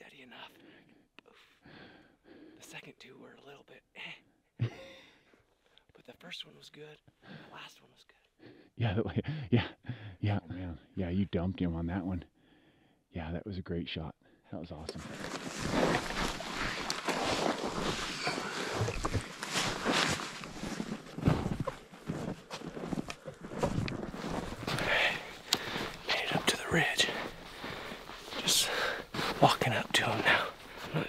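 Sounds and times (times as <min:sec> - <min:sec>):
clothing and gear rustling: 0:14.9 - 0:31.0
footsteps in snow: 0:14.9 - 0:31.0.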